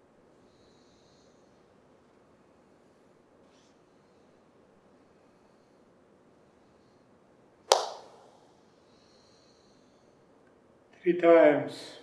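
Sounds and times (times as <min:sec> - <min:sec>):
sharp hand clap with echo: 0:07.7 - 0:08.4.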